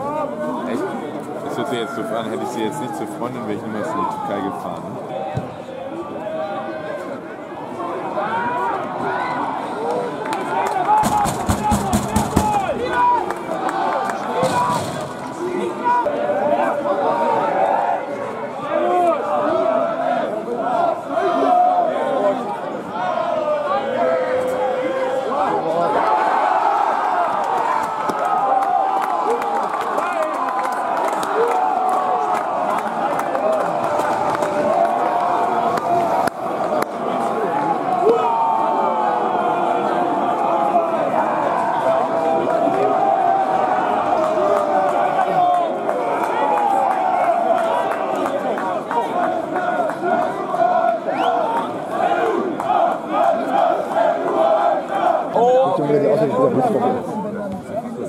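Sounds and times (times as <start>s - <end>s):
crowd cheering and chanting: 0.0s - 58.0s.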